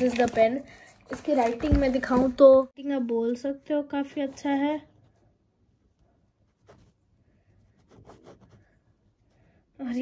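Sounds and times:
pen scratching on paper: 0:06.4 - 0:09.5.

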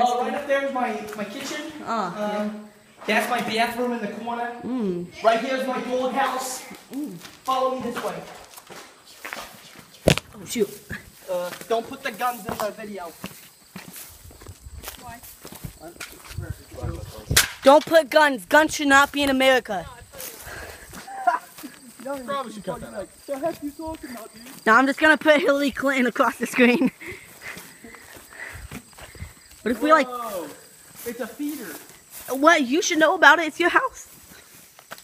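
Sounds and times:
footsteps on dirt and dry weeds: 0:06.6 - 0:24.9, 0:26.5 - 0:35.0
wind gusts on microphone: 0:14.1 - 0:17.5.

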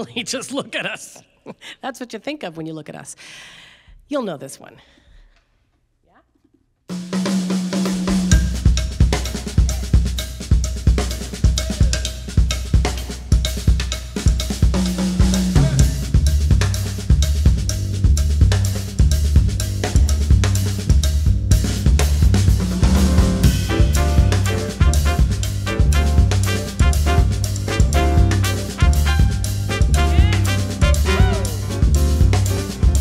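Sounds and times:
jazz drum groove: 0:06.9 - 0:33.0
upright bass line: 0:14.8 - 0:33.0.

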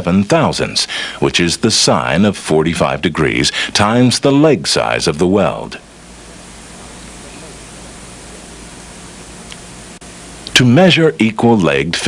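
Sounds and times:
low even hum: 0:00.0 - 0:12.0
tape hiss: 0:00.0 - 0:12.0.

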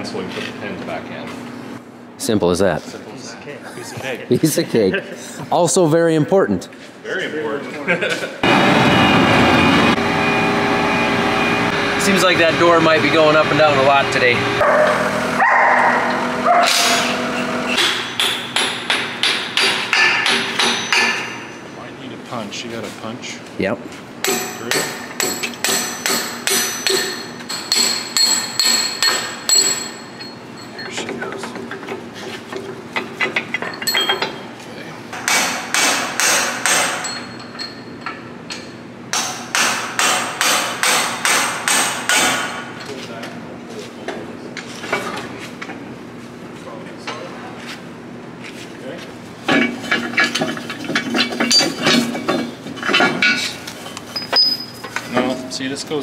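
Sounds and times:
hammer striking steel punch: 0:16.6 - 0:21.5, 0:24.2 - 0:30.0, 0:35.2 - 0:37.3, 0:39.1 - 0:42.7.

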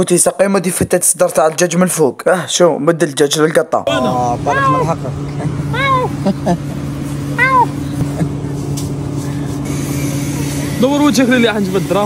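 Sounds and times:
engine idling hum: 0:03.9 - 0:12.0
cat meowing: 0:04.4 - 0:05.0, 0:05.7 - 0:06.2, 0:07.3 - 0:07.8.

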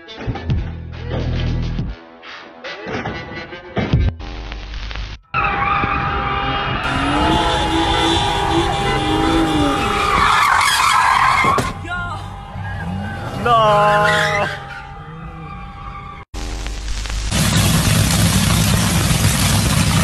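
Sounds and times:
tyres squealing and skidding: 0:05.3 - 0:16.3
car engine revving: 0:06.6 - 0:16.3.

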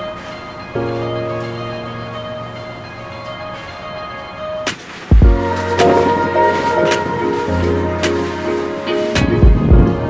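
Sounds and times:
background music of held chords: 0:00.0 - 0:10.0.

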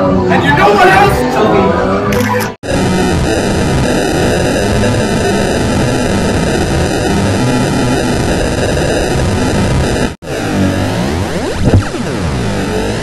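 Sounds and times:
distorted noisy cacophony: 0:00.0 - 0:13.0.

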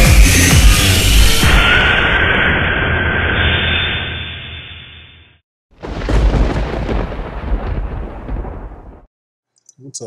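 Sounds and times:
deep rumbling boom: 0:05.8 - 0:09.1.

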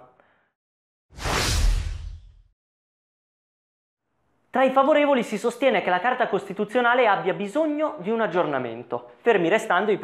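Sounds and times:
whoosh transition effect: 0:01.2 - 0:02.5.

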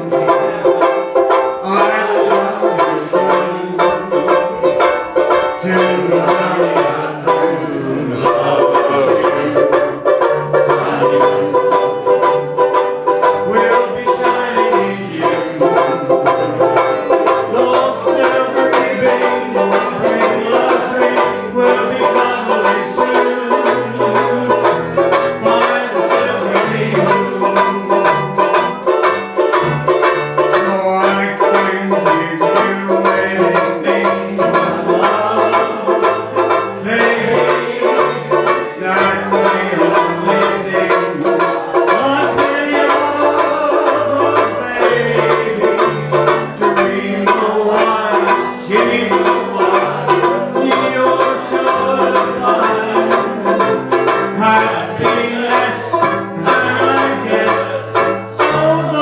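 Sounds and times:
banjo ukulele strumming: 0:00.0 - 0:59.0.

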